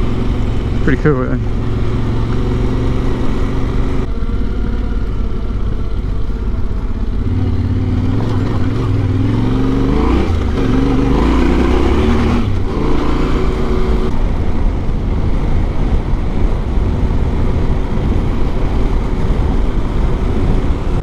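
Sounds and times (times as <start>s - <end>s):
motorcycle engine running: 0.0s - 21.0s
wind and road noise: 0.0s - 21.0s.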